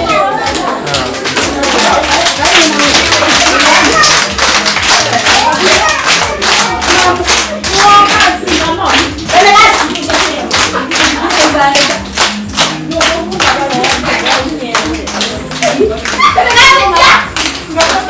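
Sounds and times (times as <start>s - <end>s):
children clapping in rhythm: 0.1s - 18.0s.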